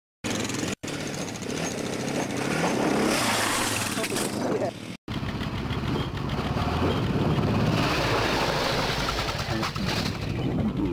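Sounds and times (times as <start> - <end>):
quad engine revving hard: 0.3 - 4.1, 5.7 - 10.9.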